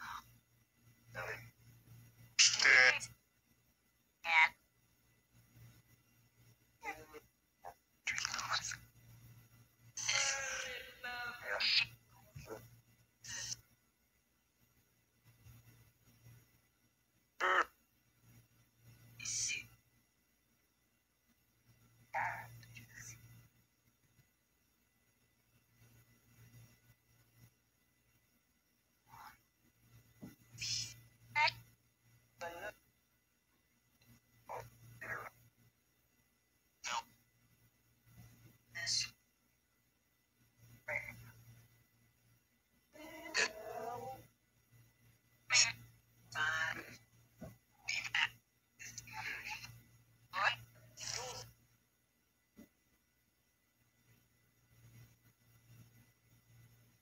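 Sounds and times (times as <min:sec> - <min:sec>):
faint low hum: 0:00.0 - 0:57.0
spirit box voice-like radio fragment: 0:01.2 - 0:01.5, 0:02.4 - 0:03.2, 0:04.3 - 0:04.6, 0:06.8 - 0:08.9, 0:10.0 - 0:13.6, 0:17.4 - 0:17.8, 0:19.2 - 0:19.7, 0:22.2 - 0:23.3, 0:30.5 - 0:31.6, 0:32.4 - 0:32.8, 0:34.4 - 0:35.4, 0:36.8 - 0:37.1, 0:38.8 - 0:39.2, 0:40.8 - 0:41.2, 0:43.0 - 0:44.2, 0:45.5 - 0:47.0, 0:47.8 - 0:51.6.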